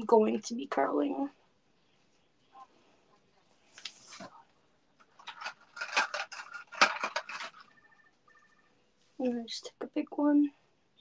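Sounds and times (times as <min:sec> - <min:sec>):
plastic hair clips clattering: 0:05.0 - 0:07.7.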